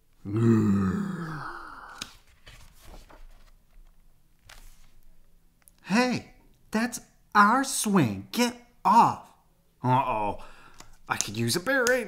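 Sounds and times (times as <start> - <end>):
man growling: 0.2 - 2.0.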